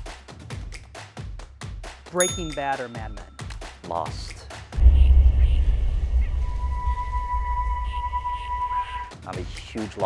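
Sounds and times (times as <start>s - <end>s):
deep low rumble: 4.8s - 8.9s
sustained high ringing tone: 4.8s - 9.0s.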